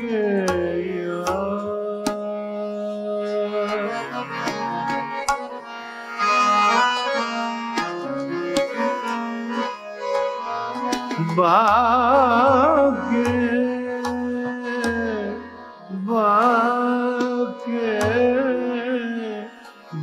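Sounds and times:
tanpura drone: 0.0s - 16.1s
harmonium melody: 0.0s - 20.0s.

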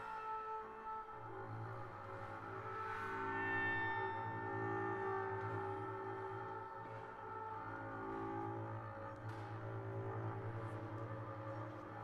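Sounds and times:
clarinet: 0.0s - 12.0s
viola: 0.0s - 12.0s.

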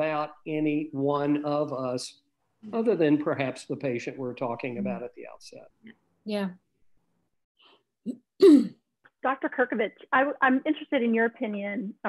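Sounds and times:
person clearing throat: 8.1s - 8.8s.

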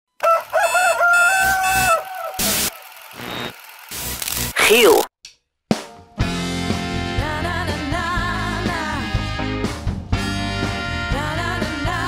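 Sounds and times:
rooster crowing: 0.2s - 2.8s.

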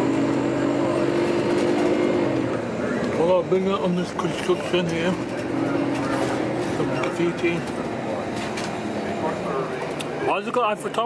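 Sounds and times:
bus engine and road noise: 0.0s - 11.0s.

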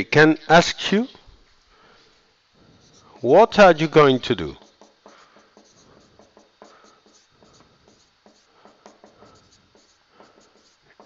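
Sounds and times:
marker scratching on whiteboard: 2.6s - 3.5s, 4.6s - 11.0s
marker tapping: 4.6s - 11.0s.

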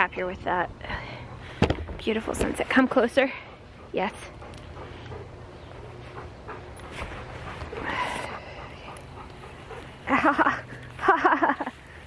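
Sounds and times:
dog panting: 0.9s - 12.0s.

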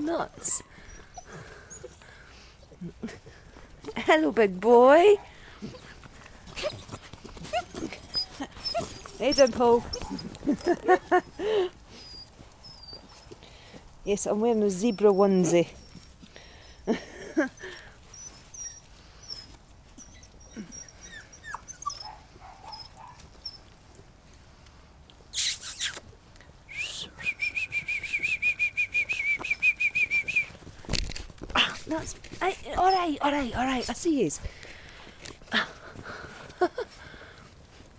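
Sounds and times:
rustling: 0.0s - 26.7s, 27.4s - 37.9s
puppies squeaking: 0.4s - 2.8s, 5.6s - 13.4s, 14.5s - 16.9s, 17.5s - 23.8s, 25.4s - 26.1s, 31.6s - 34.3s
puppies yipping and whimpering: 0.6s - 2.7s, 5.6s - 13.4s, 15.7s - 16.7s, 17.6s - 23.8s, 32.7s - 33.8s.

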